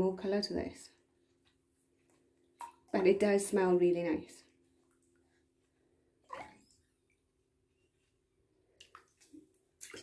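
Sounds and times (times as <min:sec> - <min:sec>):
water drips: 0:00.9 - 0:03.6, 0:04.4 - 0:08.1, 0:08.7 - 0:10.0.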